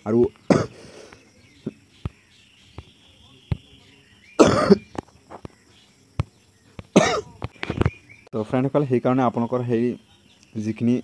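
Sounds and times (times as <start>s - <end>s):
person coughing: 0.5s - 0.8s, 4.4s - 4.8s, 7.0s - 7.4s.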